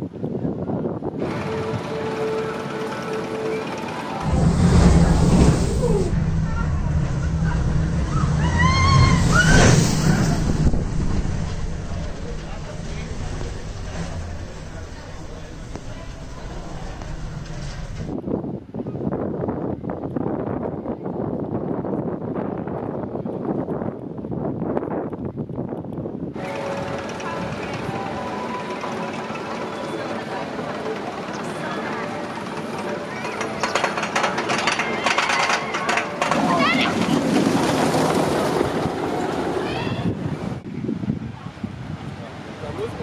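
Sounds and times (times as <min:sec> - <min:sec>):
roller coaster rumbling on track: 0:00.0 - 0:43.0.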